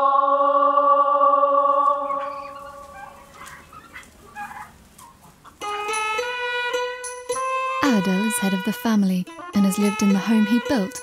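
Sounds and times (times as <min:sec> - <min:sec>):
turkeys geese and chickens calling: 0:01.7 - 0:11.0
background music: 0:05.6 - 0:11.0.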